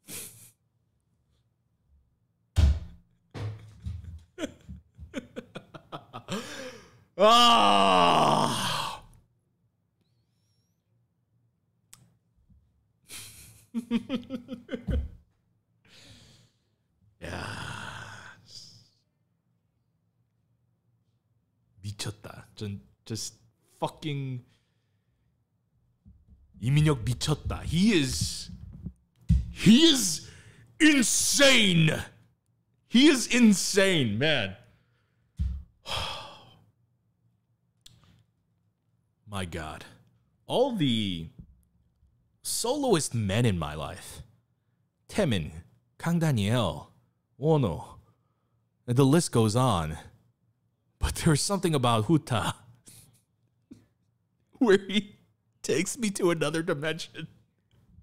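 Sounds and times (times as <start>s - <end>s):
person groaning: 6.2s - 9.1s, 17.2s - 18.6s, 35.8s - 36.6s
man sighing into microphone: 6.3s - 7.0s, 35.8s - 36.6s.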